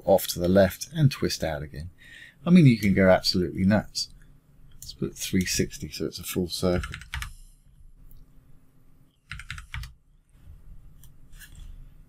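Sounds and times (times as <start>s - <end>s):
faint low hum: 0.0s - 12.0s
keyboard keys tapping: 6.8s - 7.3s, 9.3s - 9.9s.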